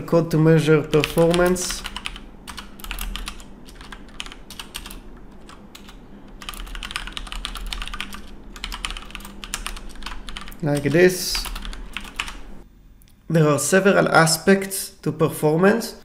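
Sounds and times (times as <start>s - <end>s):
typing on computer keyboard: 0.8s - 12.4s.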